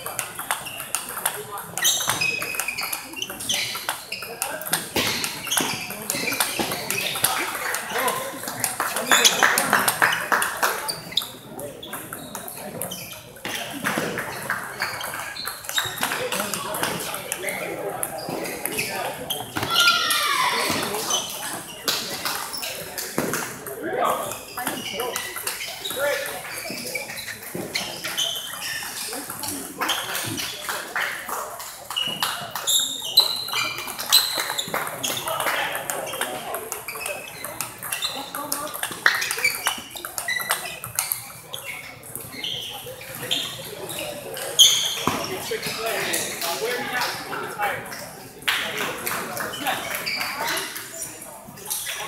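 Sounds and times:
table tennis balls clicking: 0:00.0 - 0:18.9, 0:24.6 - 0:43.6
hall of chattering voices: 0:00.0 - 0:52.0.

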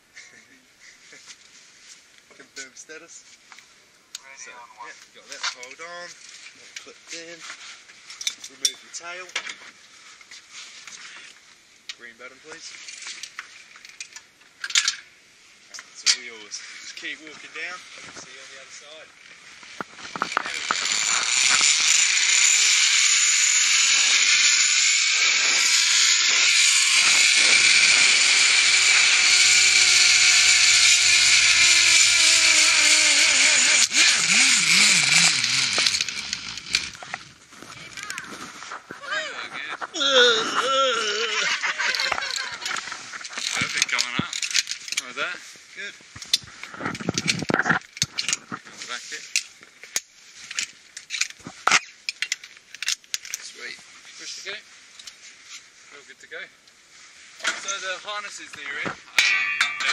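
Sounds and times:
zip line pulleys whizzing: 0:20.2 - 0:37.3, 0:41.4 - 0:43.6.

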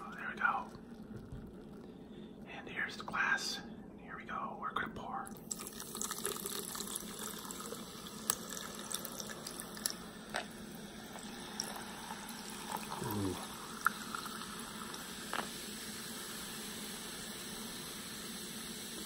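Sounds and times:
drink fizzing: 0:00.0 - 0:02.4, 0:05.3 - 0:19.0
drink pouring over ice: 0:05.3 - 0:16.6.

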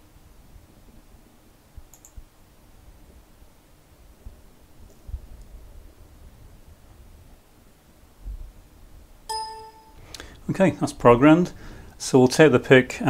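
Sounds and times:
short buzzy electronic beep: 0:09.3 - 0:10.0.

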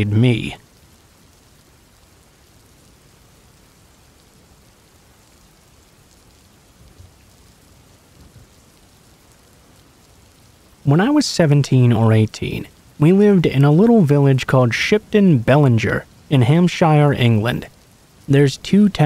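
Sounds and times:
faint steady rain: 0:00.0 - 0:19.0.

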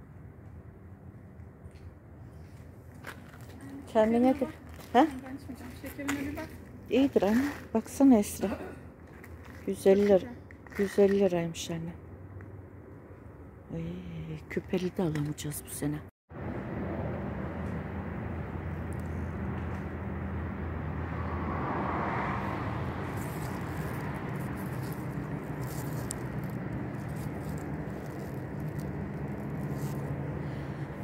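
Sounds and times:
low mechanical hum and rumble: 0:22.6 - 0:31.0.

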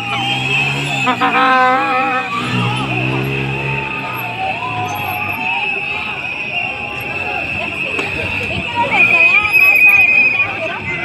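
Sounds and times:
crowd shouting and chanting: 0:00.0 - 0:11.0.

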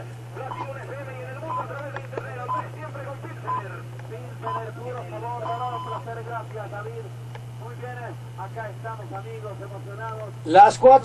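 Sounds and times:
steady low hum: 0:00.0 - 0:11.0
radio speech: 0:00.3 - 0:11.0.

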